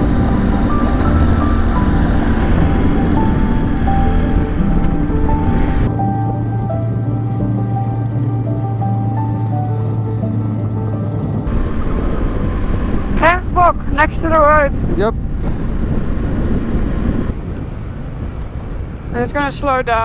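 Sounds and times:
background music held notes: 0:00.0 - 0:15.3
motorcycle engine: 0:00.0 - 0:17.3
wind rush on microphone: 0:00.0 - 0:20.0.

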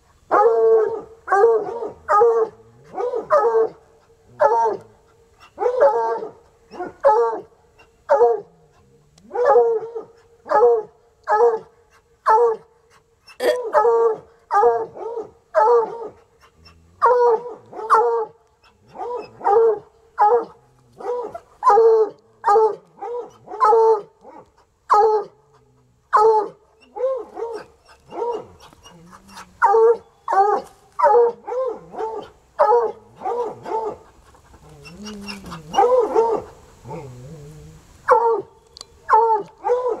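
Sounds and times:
dogs barking: 0:17.0 - 0:25.4.

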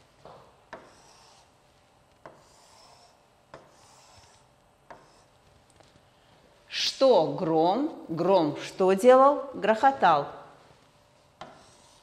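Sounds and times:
stylus tip rubbing across glass: 0:00.8 - 0:01.6, 0:02.2 - 0:05.4, 0:11.4 - 0:12.0.

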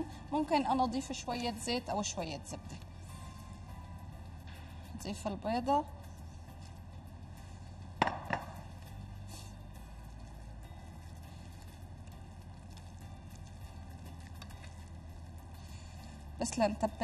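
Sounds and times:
hands mixing minced meat: 0:00.0 - 0:08.0, 0:08.6 - 0:17.0
steady low hum: 0:00.0 - 0:17.0
sharp knocks on glass dish: 0:08.0 - 0:08.6.

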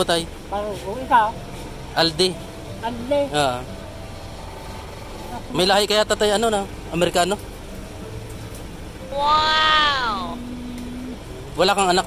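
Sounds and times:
people talking: 0:00.0 - 0:01.4, 0:02.0 - 0:03.6, 0:05.3 - 0:07.4, 0:09.2 - 0:12.0
street traffic hum: 0:00.0 - 0:12.0.

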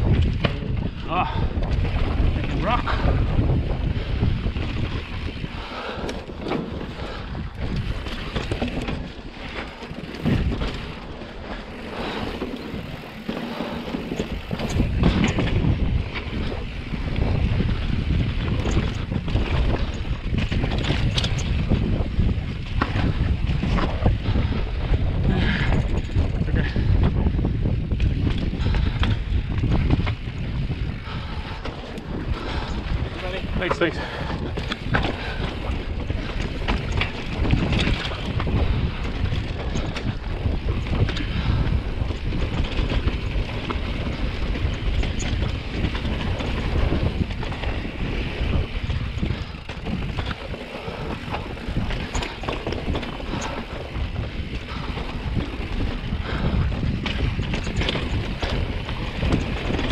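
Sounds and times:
bike knocking and rattling over rock: 0:00.0 - 0:59.9
wind rumble on microphone: 0:00.0 - 0:59.9.

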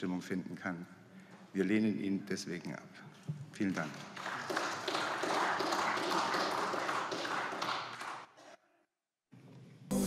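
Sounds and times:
many hands clapping: 0:03.6 - 0:08.4.

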